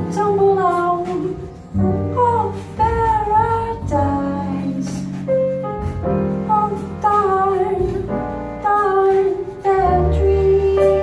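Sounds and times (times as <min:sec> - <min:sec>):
jazz ensemble playing a ballad: 0:00.0 - 0:11.0.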